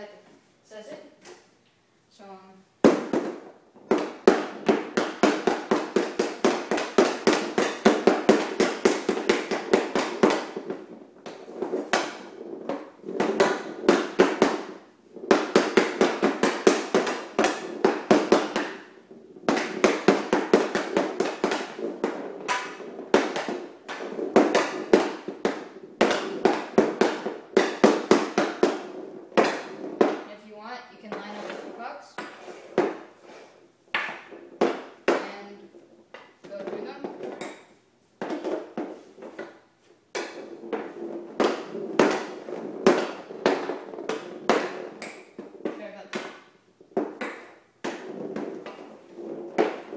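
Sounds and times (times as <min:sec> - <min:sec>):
hockey stick tapping ball: 0:02.8 - 0:49.9.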